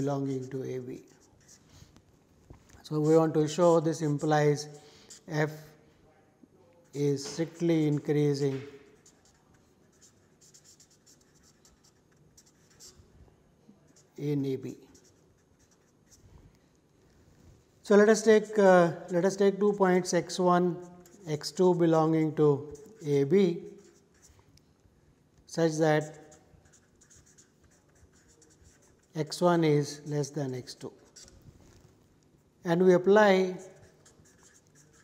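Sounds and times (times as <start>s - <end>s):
marker writing on paper: 0.0s - 5.7s, 6.8s - 13.1s, 13.8s - 16.4s, 17.9s - 24.6s, 25.5s - 31.5s, 33.1s - 35.0s.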